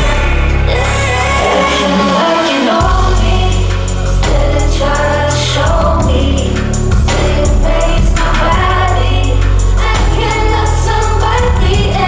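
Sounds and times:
bass-heavy backing music: 0.0s - 12.0s
person singing pop song live: 0.0s - 12.0s
drum hits: 5.7s - 12.0s.

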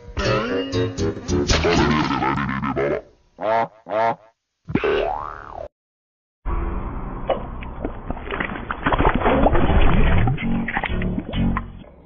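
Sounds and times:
bouncy boing-like tones: 4.7s - 5.7s.

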